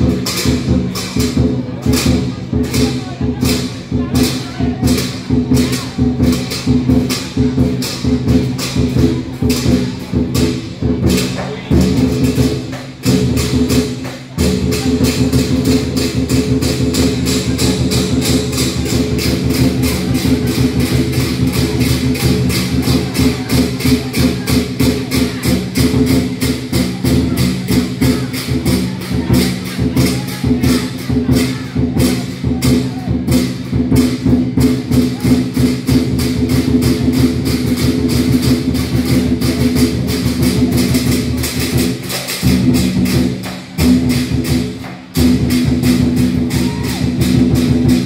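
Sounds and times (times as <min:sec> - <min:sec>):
cymbals clashing: 0:00.0 - 0:48.0
drum beating fast rhythm: 0:00.0 - 0:48.0.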